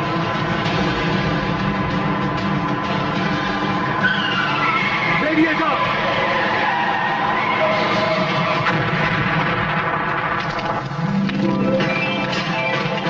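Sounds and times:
speeding vehicle engine: 0.0s - 9.7s
tyres squealing: 3.3s - 8.8s.

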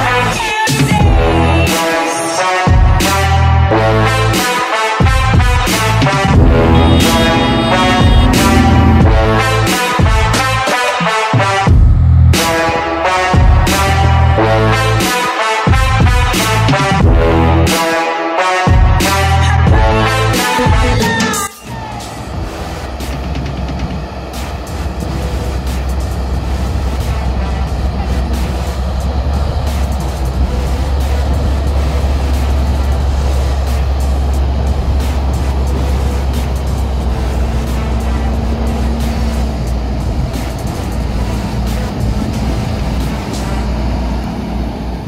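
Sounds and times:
tractor diesel engines running: 0.0s - 15.1s, 15.9s - 17.7s, 18.8s - 45.0s.

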